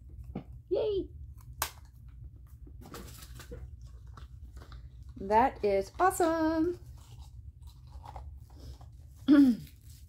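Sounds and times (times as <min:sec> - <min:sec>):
gift packaging rustling: 0:02.5 - 0:10.0.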